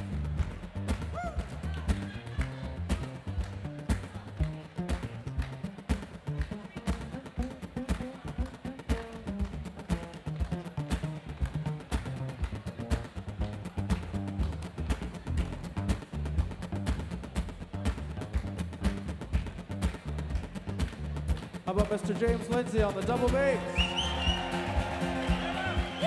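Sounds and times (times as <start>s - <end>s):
double bass plucking: 0.0s - 25.5s.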